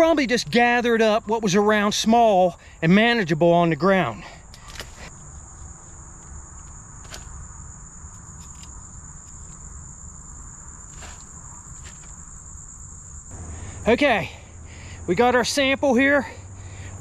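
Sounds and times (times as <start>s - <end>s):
insects chirping: 0.0s - 17.0s
trowel scraping charcoal: 10.9s - 12.3s.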